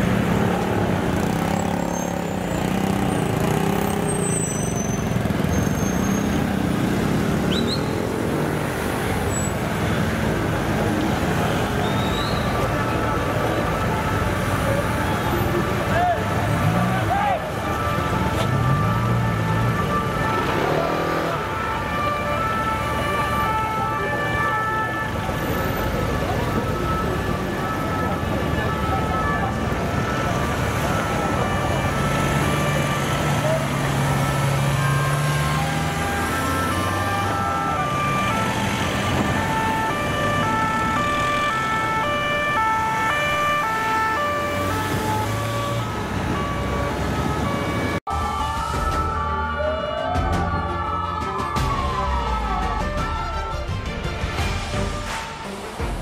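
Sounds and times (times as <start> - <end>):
two-tone police sirens: 0.0 - 53.7
city traffic noise: 0.0 - 56.0.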